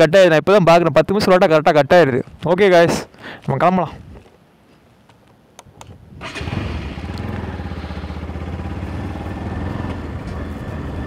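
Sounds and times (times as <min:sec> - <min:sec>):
motorcycle engine running: 0:06.2 - 0:11.0.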